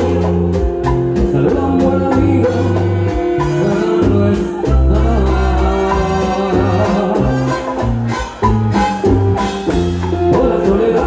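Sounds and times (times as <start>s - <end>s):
lead vocal singing: 0.0s - 8.3s, 10.2s - 11.0s
live latin dance band: 0.0s - 11.0s.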